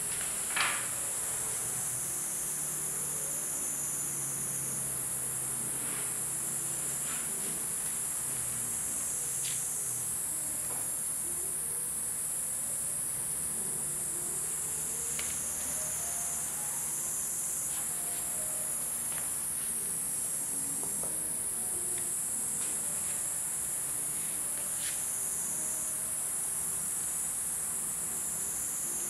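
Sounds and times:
high-pitched insect drone: 0.0 - 29.0.

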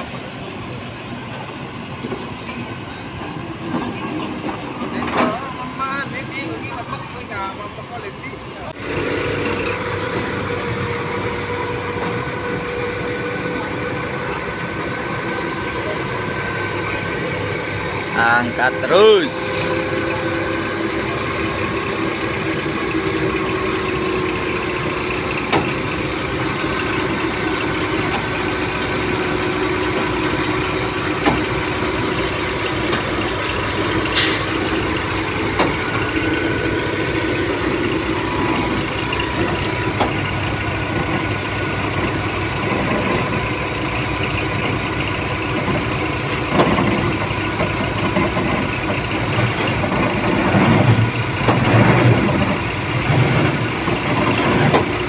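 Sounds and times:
forklift diesel engines running: 0.0 - 55.0.

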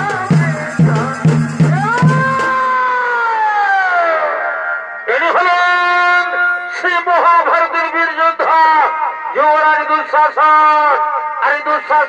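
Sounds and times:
drumming: 0.0 - 2.9.

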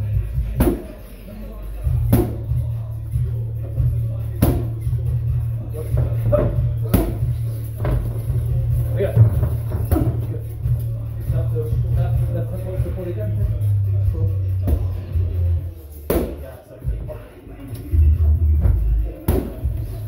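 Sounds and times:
gym music with heavy bass: 0.0 - 20.0.

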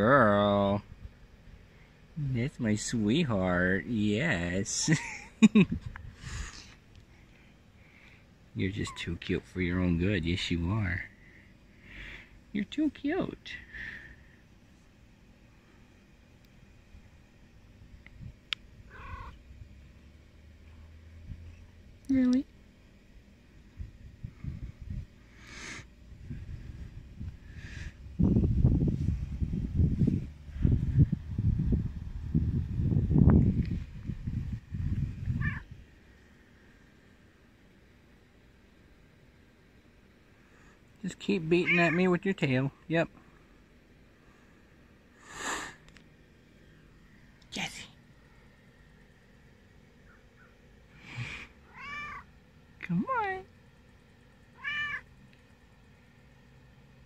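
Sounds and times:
cat calling: 18.8 - 19.4, 35.4 - 35.7, 41.6 - 42.1, 51.6 - 52.3, 54.5 - 55.1
cat chirp: 18.9 - 19.4, 35.4 - 35.6, 51.6 - 52.3, 54.6 - 55.1
low rumbling noise: 22.6 - 37.4.

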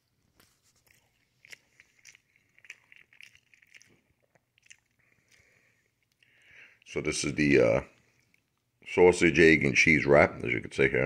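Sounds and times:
person chewing: 0.0 - 6.9, 7.9 - 8.8.

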